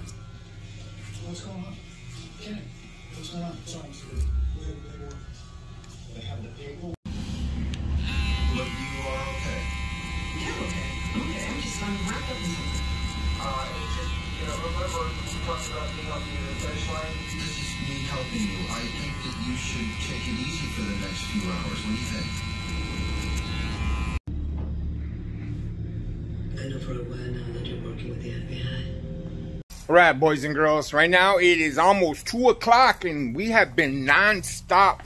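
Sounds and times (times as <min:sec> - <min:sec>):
hair trimmer whining: 0:07.6 - 0:24.3
voices in background: 0:08.2 - 0:23.6
low hum: 0:22.3 - 0:29.6.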